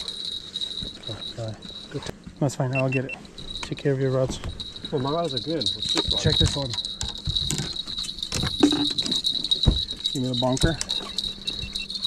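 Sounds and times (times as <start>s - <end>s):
steady high-pitched tone: 0.0s - 12.0s
fishing gear knocking and clattering: 3.4s - 12.0s.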